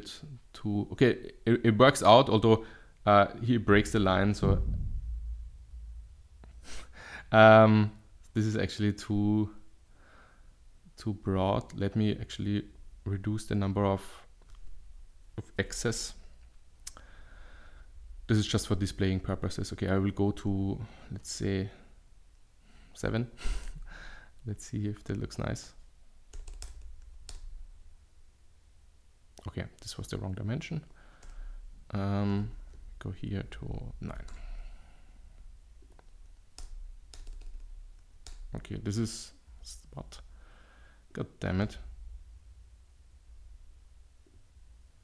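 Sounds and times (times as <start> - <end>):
computer keyboard keystrokes: 26.3 - 27.5, 35.9 - 38.5.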